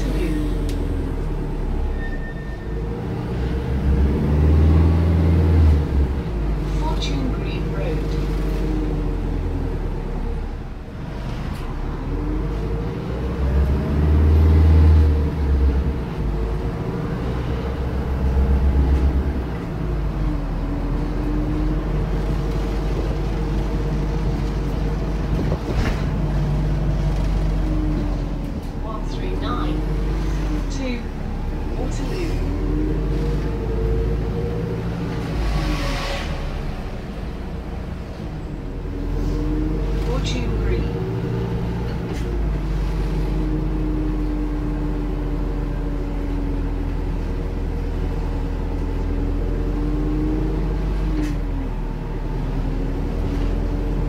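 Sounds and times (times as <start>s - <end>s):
bus drivetrain drone and whine: 0.0s - 54.0s
heavy low rumble: 0.0s - 54.0s.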